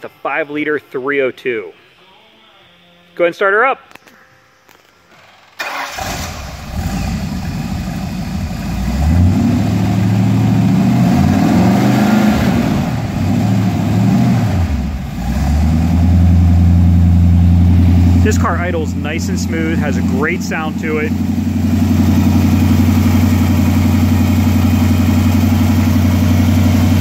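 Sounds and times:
car engine cranking and starting: 5.1 - 27.0
engine revving: 5.6 - 27.0
engine idling smoothly: 14.7 - 27.0.

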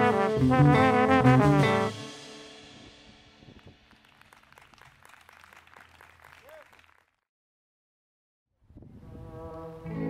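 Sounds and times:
jazz music: 0.0 - 3.5
audience clapping: 3.6 - 7.2.

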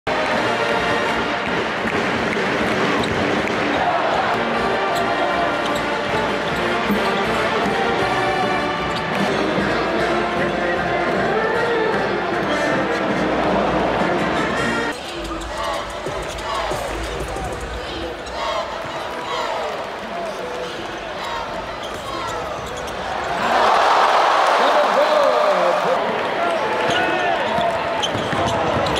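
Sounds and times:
music playing: 0.1 - 3.0, 3.8 - 18.1
arena crowd noise: 0.1 - 28.9
sneakers squeaking on hardwood: 20.6 - 23.4, 26.5 - 28.9
basketballs bouncing on hardwood: 27.6 - 28.9.

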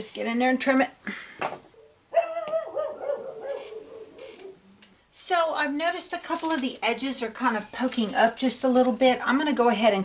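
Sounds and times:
dog barking: 2.1 - 4.6.

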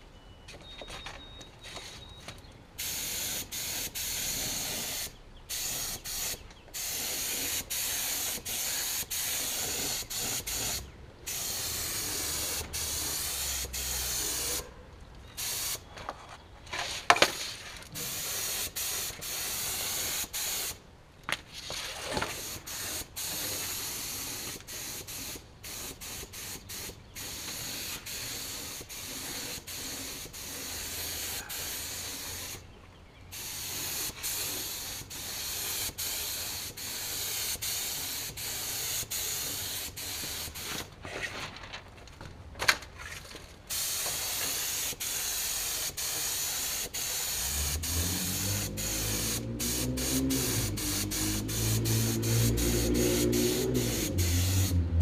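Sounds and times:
paint spray gun hissing: 2.8 - 14.6, 15.4 - 15.8, 18.0 - 20.8, 22.3 - 32.6, 33.3 - 40.7, 43.7 - 54.8.

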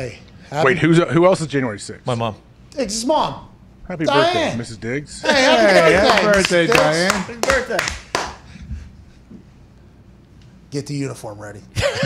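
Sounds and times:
sharp hand clap with echo: 6.2 - 8.5.

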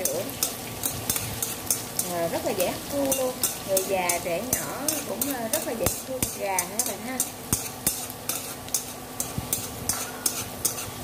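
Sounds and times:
ginger sizzling in hot oil: 0.0 - 11.0
metal tongs clacking on pan: 0.0 - 11.0.

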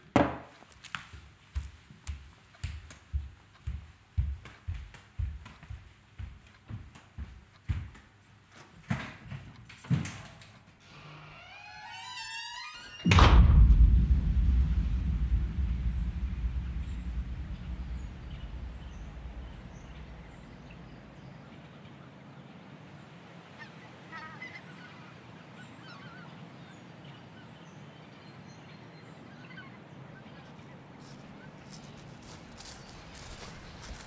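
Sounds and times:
low outdoor ambience: 0.0 - 34.0
heavy footsteps on hard floor: 1.2 - 8.1.

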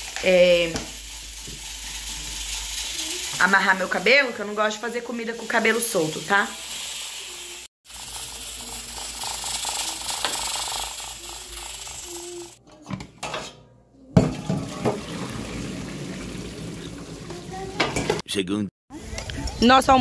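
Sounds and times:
gas burner hissing: 0.0 - 12.6.

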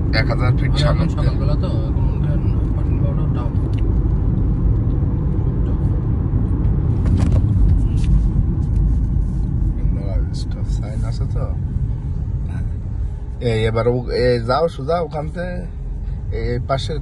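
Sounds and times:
car road and engine rumble: 0.0 - 17.0.

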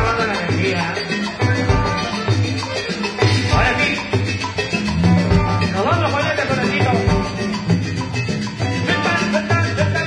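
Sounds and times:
live band playing latin dance music: 0.0 - 10.0.

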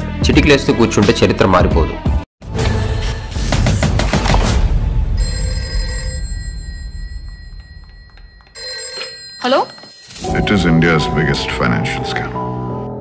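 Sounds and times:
music: 0.0 - 5.2, 10.1 - 13.0
ringing tone: 5.1 - 12.4.

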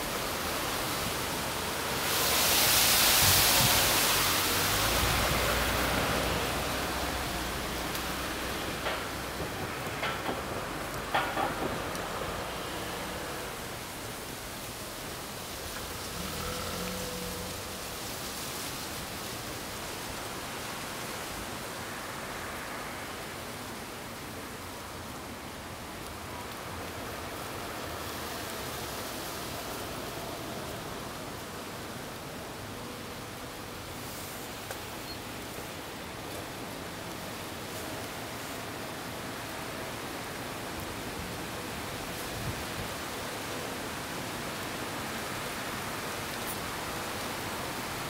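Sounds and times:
outdoor background hiss: 0.0 - 48.0.

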